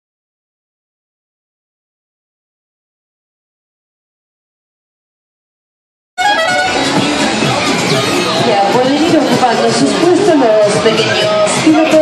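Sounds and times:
crowd chatter: 6.2 - 12.0
fairground music: 6.2 - 12.0.

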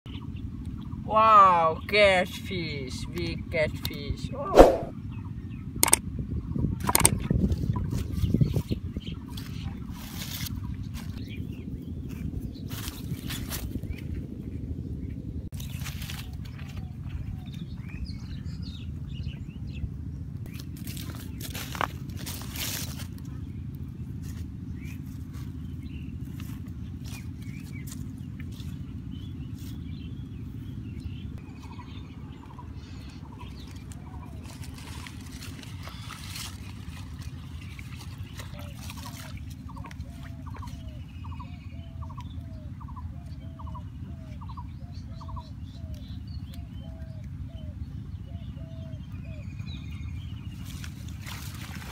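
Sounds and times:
steady low rumble: 2.7 - 51.9
bare feet crunching dry leaves: 9.4 - 11.3, 12.0 - 14.0, 15.5 - 16.9, 20.5 - 30.0, 33.5 - 40.8, 50.5 - 51.9
bird calling: 24.6 - 51.9.

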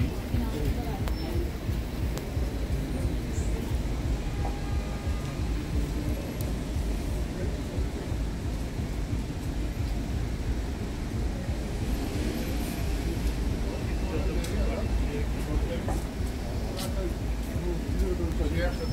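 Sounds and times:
low street rumble: 0.0 - 18.9.

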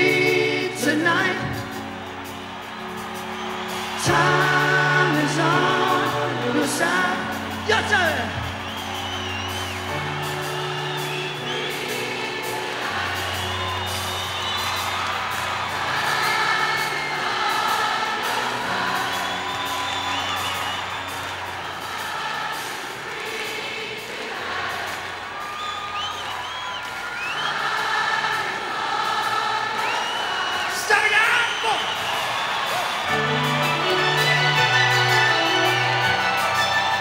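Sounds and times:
person singing: 0.0 - 2.0, 3.9 - 8.5, 33.1 - 37.0
rock band playing: 0.0 - 28.2, 31.5 - 37.0
crowd cheering and whistling: 0.0 - 37.0.

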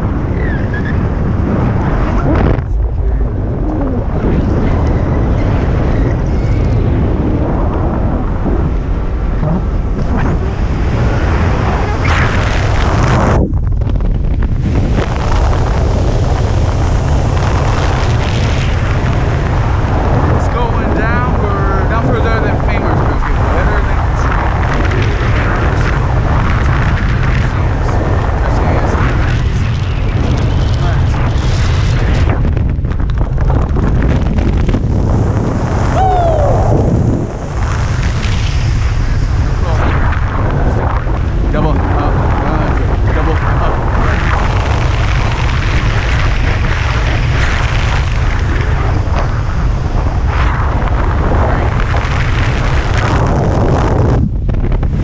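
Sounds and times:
wind buffeting microphone: 0.0 - 55.0.

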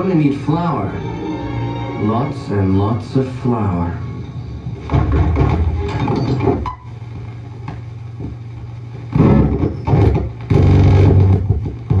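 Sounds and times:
film soundtrack: 0.0 - 7.2
projector hum: 0.0 - 12.0
rough noise bursts: 0.0 - 12.0.

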